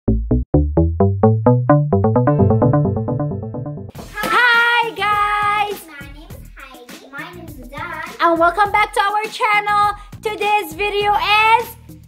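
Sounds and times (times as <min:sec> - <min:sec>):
children calling sing-song: 0:04.1 - 0:05.8.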